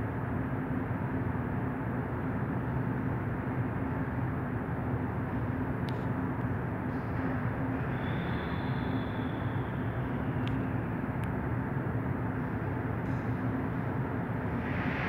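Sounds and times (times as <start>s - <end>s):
low hum of metro station: 0.0s - 15.0s.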